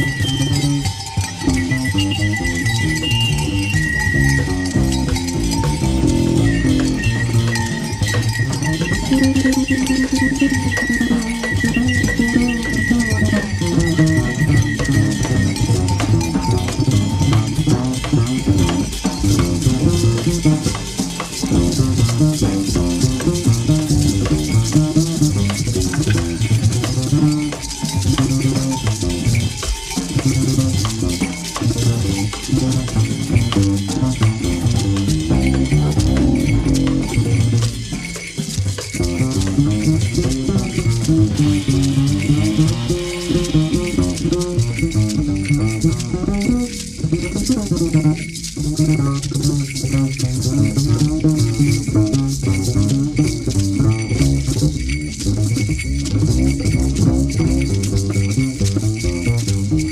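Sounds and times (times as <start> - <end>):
shaken rattle: 0.0 - 59.9.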